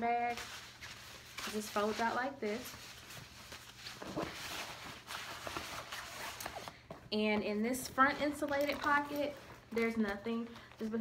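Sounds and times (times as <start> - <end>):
fabric rustling: 0.0 - 6.8.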